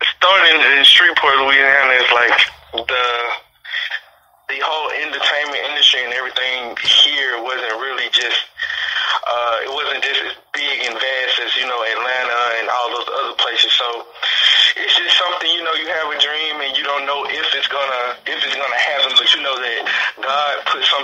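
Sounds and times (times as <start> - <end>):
man talking: 0.0 - 21.0.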